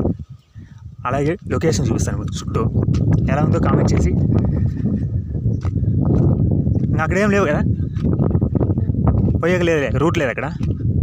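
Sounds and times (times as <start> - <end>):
wind on microphone: 0.0 - 11.0
footsteps on gravel: 2.8 - 9.8, 10.4 - 10.8.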